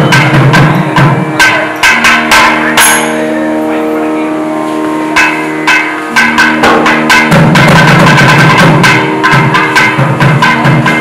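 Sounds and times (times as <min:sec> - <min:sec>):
barrel drum strokes: 0:00.0 - 0:11.0
held drone note: 0:00.0 - 0:11.0.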